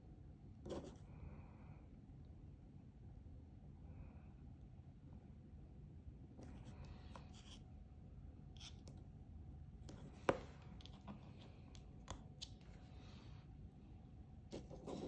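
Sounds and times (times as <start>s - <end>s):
light rubbing on tabletop: 14.5s - 15.0s.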